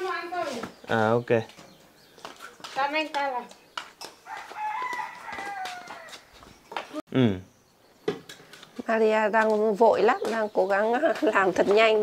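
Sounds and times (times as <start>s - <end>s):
rooster crowing: 4.2s - 6.3s.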